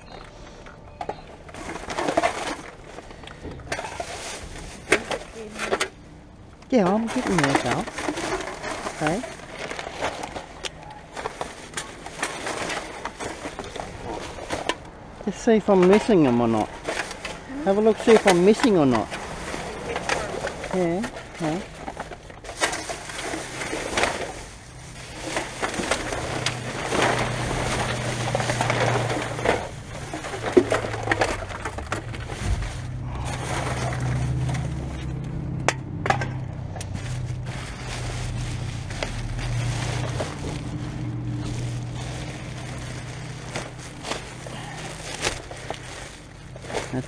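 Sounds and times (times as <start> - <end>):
plastic bags rustling: 0.0 - 47.0
rubbish knocking about: 6.8 - 47.0.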